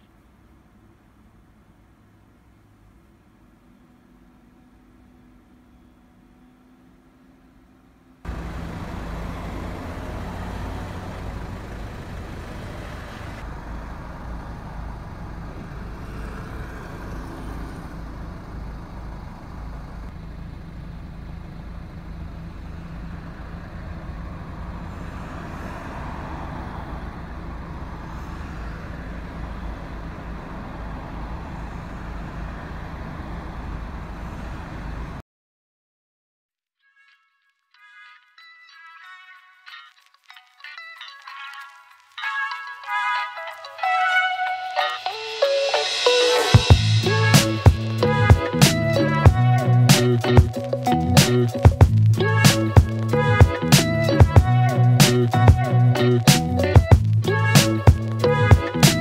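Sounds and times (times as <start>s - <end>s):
low rumble of traffic: 0.0s - 35.2s, 46.6s - 59.0s.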